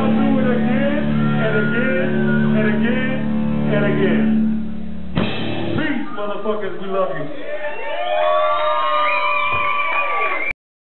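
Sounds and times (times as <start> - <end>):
electric guitar feedback: 0.0 - 7.3.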